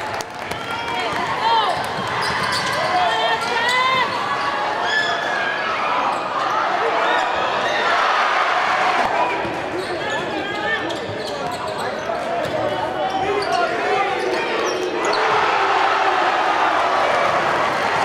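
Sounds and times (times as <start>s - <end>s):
crowd chatter: 0.0s - 18.0s
sneaker squeaks: 2.0s - 5.2s, 9.2s - 15.3s.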